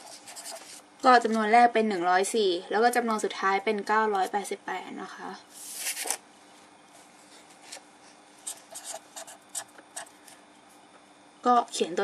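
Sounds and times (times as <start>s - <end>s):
marker scratching on paper: 0.0s - 0.8s, 8.4s - 10.1s.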